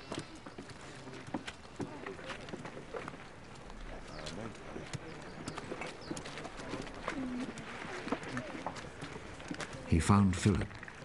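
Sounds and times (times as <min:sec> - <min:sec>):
faint background murmur: 0:00.0 - 0:11.0.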